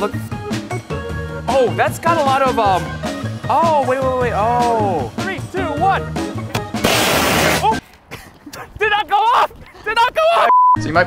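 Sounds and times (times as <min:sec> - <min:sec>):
smoke jet rushing blast: 0:06.7 - 0:07.8
excited voices: 0:08.4 - 0:10.5
censor bleep: 0:10.5 - 0:10.8.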